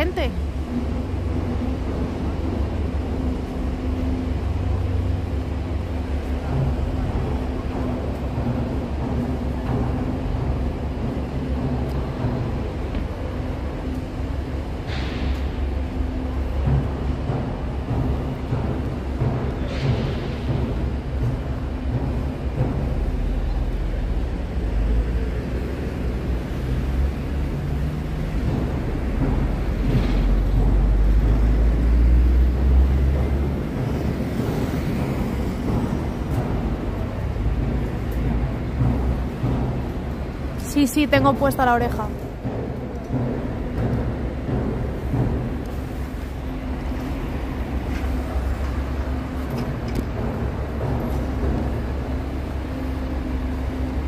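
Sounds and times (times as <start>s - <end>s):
heavy machinery diesel rumble: 0.0s - 54.0s.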